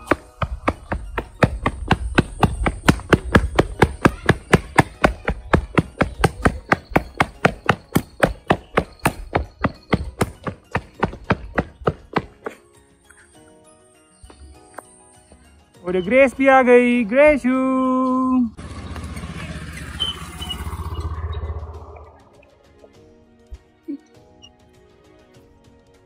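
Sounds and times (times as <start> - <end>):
quick footsteps on concrete: 0.0 - 12.6
low rumble: 18.6 - 22.5.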